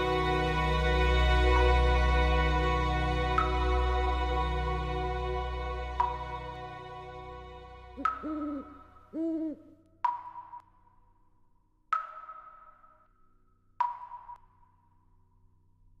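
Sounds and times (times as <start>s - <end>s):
owl hooting: 8.0s - 9.8s.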